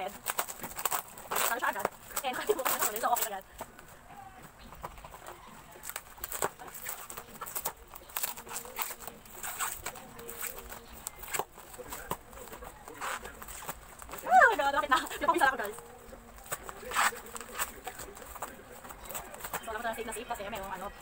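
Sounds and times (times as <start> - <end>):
plastic wrapping crinkling and tearing: 0.0 - 3.4, 5.2 - 19.8.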